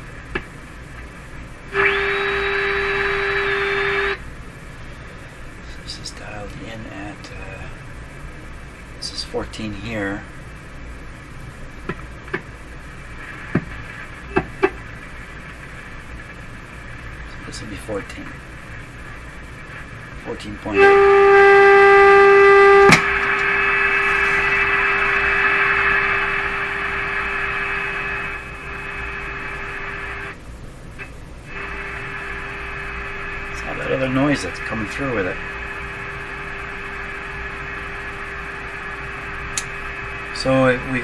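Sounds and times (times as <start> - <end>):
radio speaker hissing: 0.0 - 41.0
steady test tone: 0.0 - 41.0
radio control clicks: 22.9 - 23.5.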